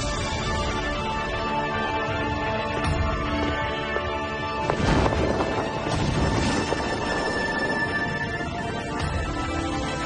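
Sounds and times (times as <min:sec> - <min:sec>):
dramatic film score music: 0:00.0 - 0:10.0.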